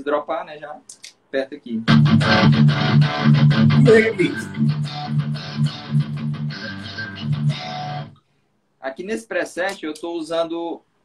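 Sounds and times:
distorted electric guitar riff: 1.9 - 8.2.

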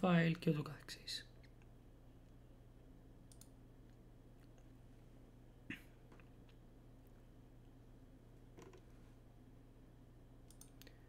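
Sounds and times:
faint low hum: 0.0 - 11.0
computer mouse clicks: 3.2 - 4.6, 8.5 - 8.9, 10.4 - 11.0.

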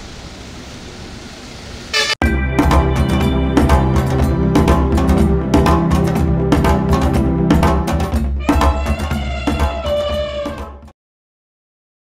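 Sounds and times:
car engine and tyres on wet road: 0.0 - 2.0
short pitched horn blast: 1.9 - 4.9.

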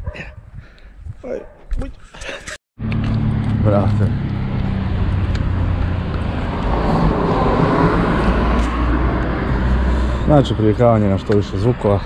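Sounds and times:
motor vehicle engine hum: 2.8 - 12.0
vehicle passing road noise: 2.8 - 12.0.

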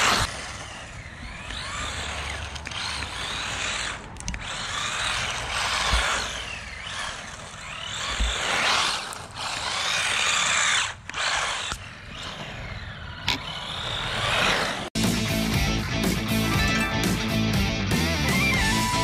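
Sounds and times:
electric toy car motor whining: 0.0 - 14.9.

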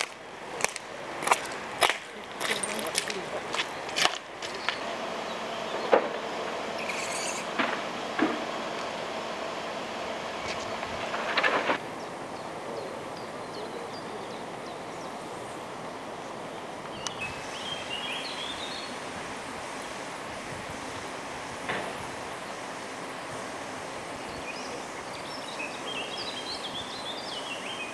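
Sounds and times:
roadside background noise: 0.0 - 27.9
bird chirping: 16.9 - 18.9, 24.2 - 27.9.

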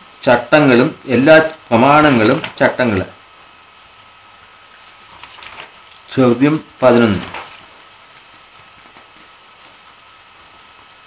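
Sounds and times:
background hiss: 0.0 - 11.0.

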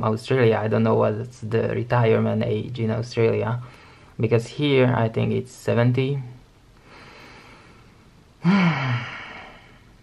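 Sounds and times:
man sighing: 8.4 - 9.9.

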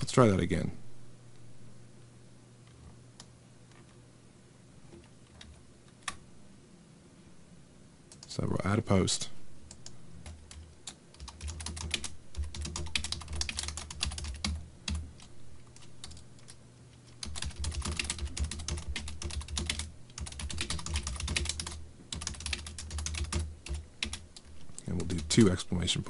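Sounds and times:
keyboard typing: 9.7 - 25.5.

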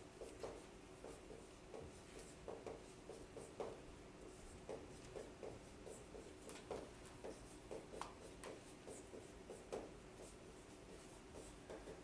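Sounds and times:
marker writing on whiteboard: 0.1 - 12.0.

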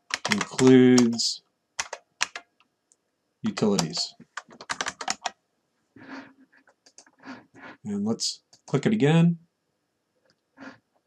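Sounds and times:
computer keyboard typing: 0.0 - 2.5, 3.5 - 5.4, 6.8 - 7.2.

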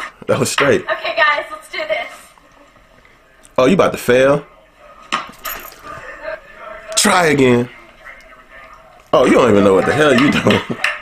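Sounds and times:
scuffing and shuffling: 5.3 - 6.1.

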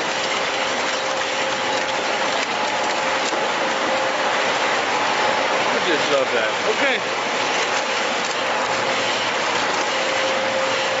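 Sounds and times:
packing machinery running: 0.0 - 11.0
steady hum: 0.0 - 11.0.

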